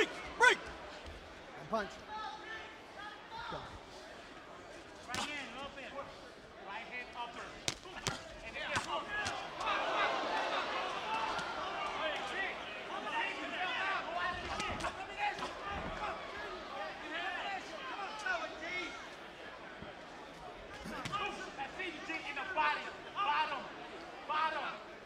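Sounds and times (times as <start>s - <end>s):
crowd shouting: 0.0s - 1.1s, 7.8s - 19.6s.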